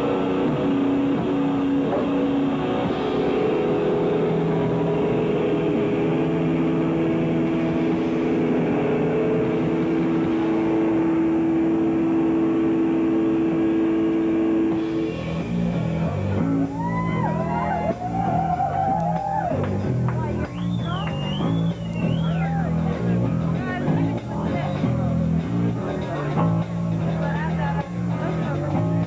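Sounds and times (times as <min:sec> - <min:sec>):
guitar feedback: 0:00.0 - 0:28.8
distorted guitar and bass drone: 0:00.0 - 0:29.0.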